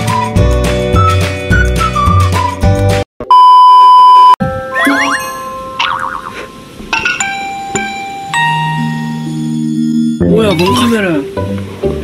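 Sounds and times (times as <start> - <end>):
test tone beep: 3.2 - 6.5
playful music sting: 4.5 - 6.6.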